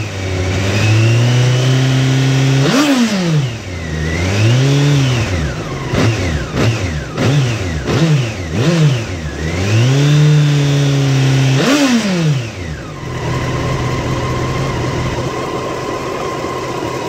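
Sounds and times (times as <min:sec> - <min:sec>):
motorcycle engine revving and idling: 0:00.0 - 0:17.0.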